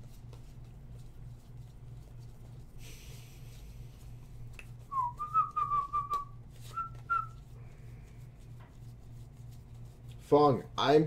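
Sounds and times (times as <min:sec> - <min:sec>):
steady low hum: 0:00.0 - 0:11.0
man whistling: 0:04.9 - 0:07.4
trading cards flipping: 0:06.0 - 0:07.4.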